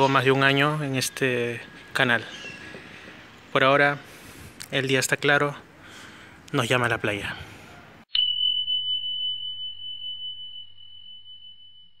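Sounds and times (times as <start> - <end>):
high chime ding: 8.1 - 12.0.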